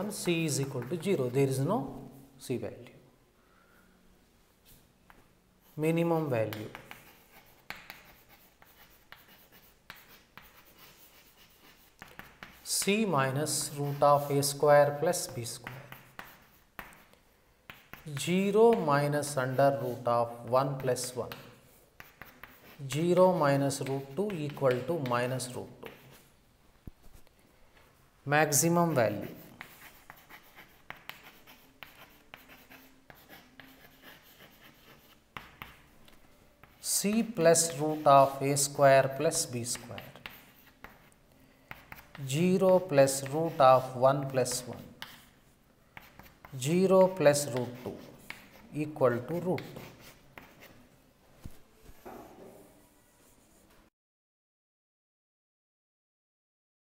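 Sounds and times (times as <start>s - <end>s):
chalk scratching on chalkboard: 0.0s - 1.6s, 4.7s - 26.3s, 28.4s - 50.9s
chalk tapping on chalkboard: 0.2s - 1.2s, 6.2s - 20.1s, 20.7s - 26.2s, 29.0s - 45.4s, 46.0s - 50.8s.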